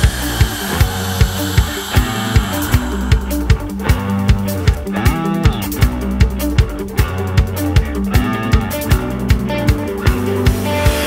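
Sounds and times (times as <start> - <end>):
rock band instrumental: 0.0 - 11.0.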